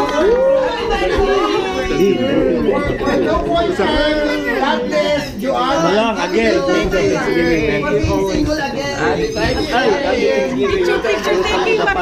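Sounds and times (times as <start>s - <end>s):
crowd chatting: 0.0s - 12.0s.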